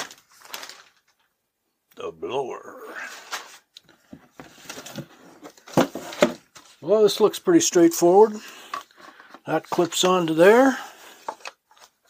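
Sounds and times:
cardboard rustling and scraping: 0:03.0 - 0:06.8.

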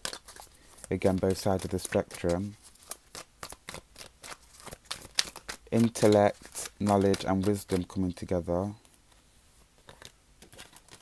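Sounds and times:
cards clicking and rustling: 0:00.0 - 0:09.0, 0:09.8 - 0:11.0.

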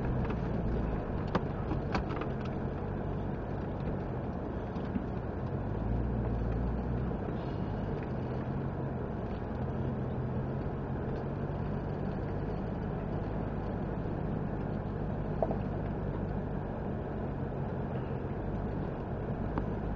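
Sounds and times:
off-road vehicle engine at low revs: 0:00.0 - 0:19.9.

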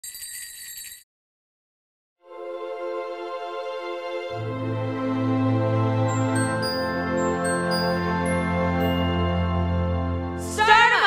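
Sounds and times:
high bell-like electronic tone: 0:06.3 - 0:09.5.

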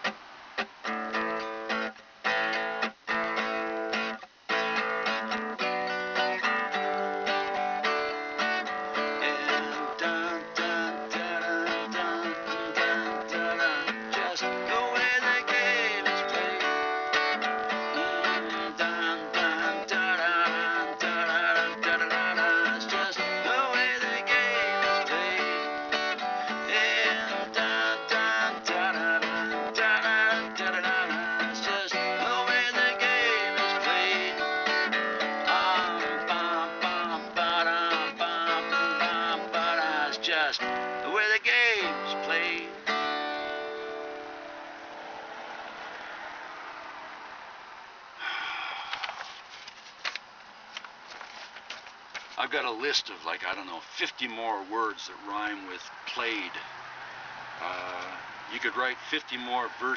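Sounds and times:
strummed acoustic guitar: 0:00.0 - 0:46.4, 0:49.2 - 0:56.8.

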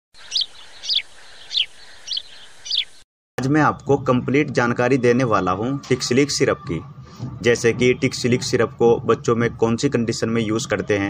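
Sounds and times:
bird chirping: 0:00.2 - 0:03.0.

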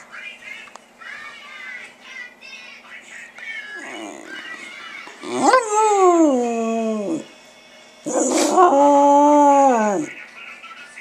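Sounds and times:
dog howling: 0:05.2 - 0:07.3, 0:08.1 - 0:10.2.

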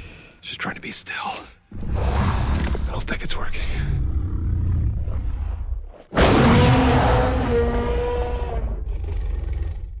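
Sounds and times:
dinosaur roar: 0:03.8 - 0:10.0.

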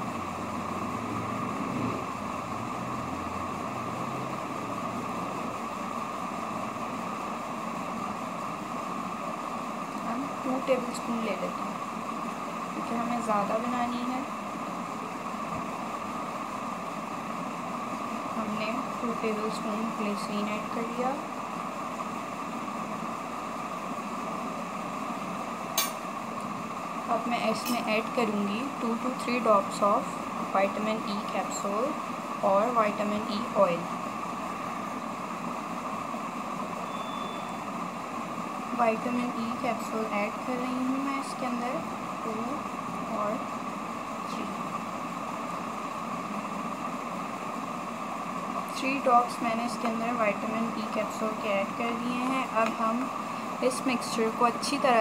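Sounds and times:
steady background hiss: 0:00.0 - 0:55.0
steady fan hum: 0:00.0 - 0:55.0.

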